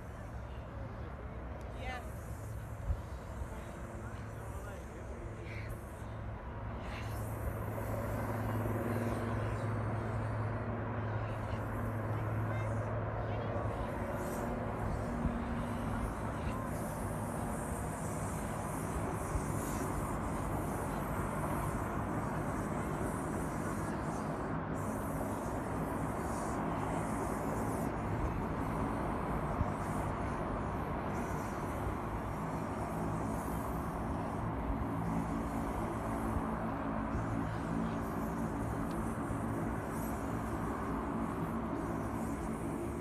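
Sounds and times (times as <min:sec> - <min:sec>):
faint voices: 0:00.0 - 0:43.0
steady low rumble: 0:00.0 - 0:43.0.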